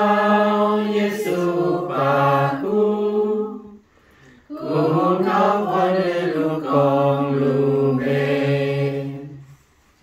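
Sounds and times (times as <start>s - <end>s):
group singing a hymn: 0.0s - 9.6s.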